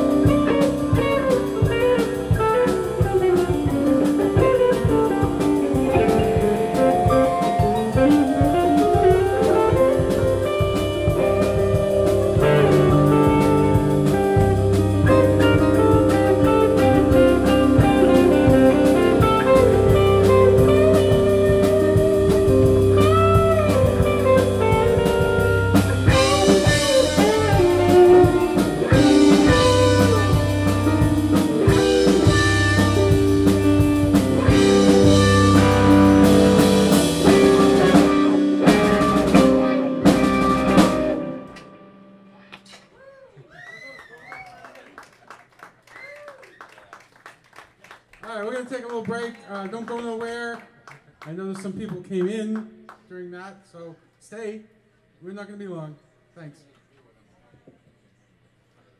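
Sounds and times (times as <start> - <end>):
live rock band playing: 0.0 - 42.7.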